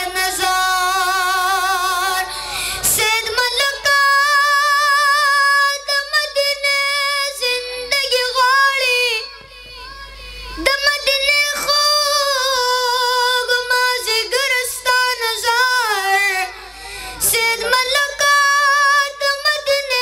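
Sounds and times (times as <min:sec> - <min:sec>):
boy singing into a microphone: 0:00.0 - 0:20.0.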